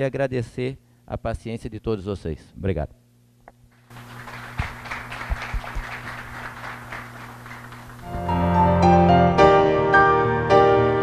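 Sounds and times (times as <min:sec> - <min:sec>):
low electrical hum: 0:00.0 - 0:11.0
audience applauding: 0:03.9 - 0:08.2.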